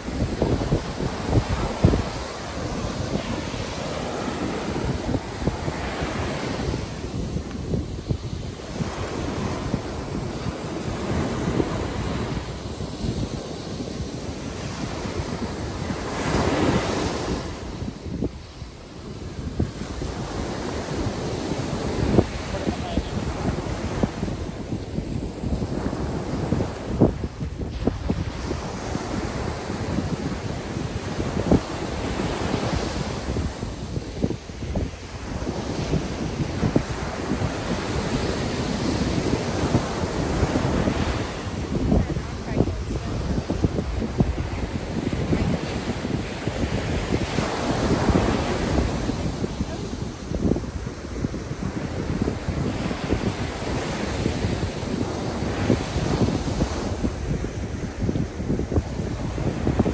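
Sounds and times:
ocean surf breaking on beach: 0.0 - 59.9
wind buffeting microphone: 0.0 - 59.9.

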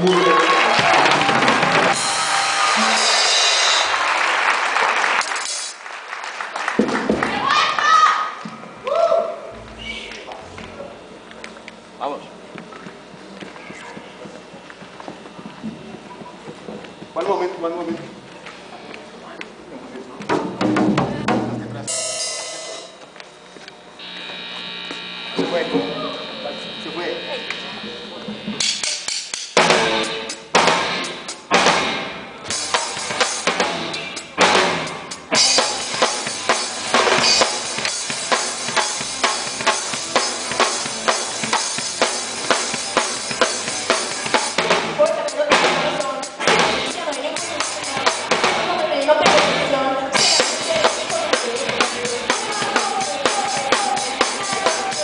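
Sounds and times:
drum kit: 0.0 - 4.1, 20.3 - 23.0, 28.2 - 55.0
rock band playing live: 0.0 - 4.1, 27.4 - 55.0
cymbals: 21.9 - 23.0.

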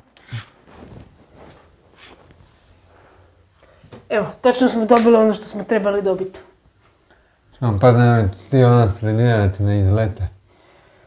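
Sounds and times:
net curtain rustling: 0.0 - 2.7.

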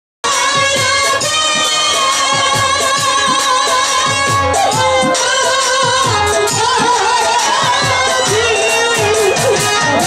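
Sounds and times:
band playing: 0.2 - 10.0
woman singing: 0.2 - 10.0.

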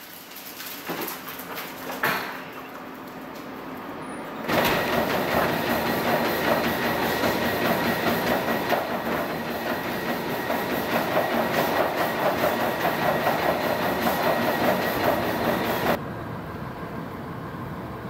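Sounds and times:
treadmill motor whine: 2.6 - 16.0
treadmill belt rumble: 4.4 - 16.0.

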